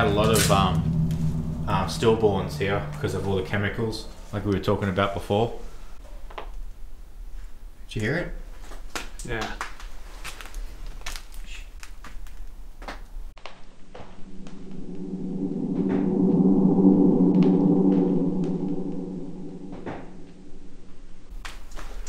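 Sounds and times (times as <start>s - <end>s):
low gong-like drone: 0.0s - 4.7s, 14.2s - 21.1s.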